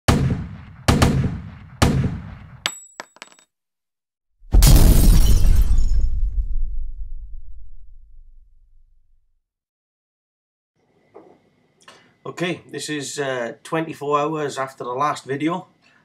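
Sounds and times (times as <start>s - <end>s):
heavy booming hits: 4.5s - 5.2s.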